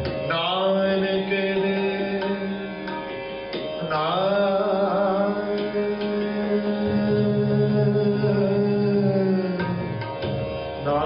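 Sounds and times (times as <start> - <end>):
bowed string instruments: 0.0 - 11.0
man singing long held note: 0.3 - 2.9, 3.8 - 10.1.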